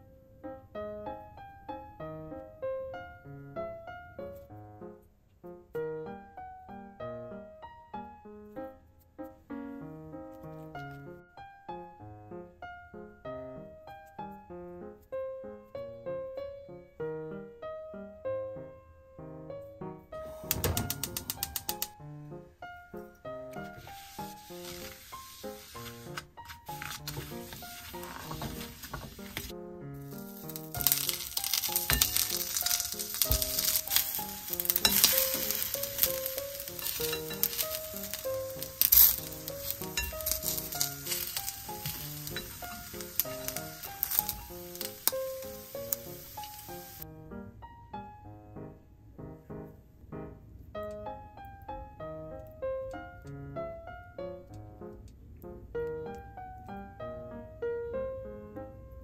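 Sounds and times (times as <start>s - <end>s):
rice patties sizzling in pan: 20.2s - 21.9s, 23.6s - 47.0s.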